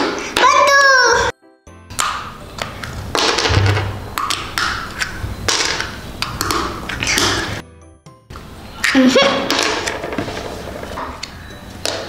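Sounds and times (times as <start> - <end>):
plastic egg shell cracking: 1.9 - 3.6.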